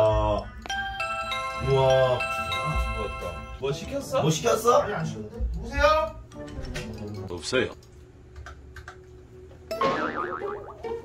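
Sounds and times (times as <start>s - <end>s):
background music: 0.0s - 5.0s
comic boing sound effect: 9.7s - 11.0s.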